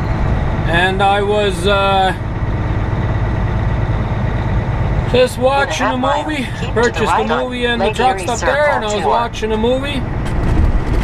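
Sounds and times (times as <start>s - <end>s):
diesel truck engine and road noise: 0.0s - 11.0s.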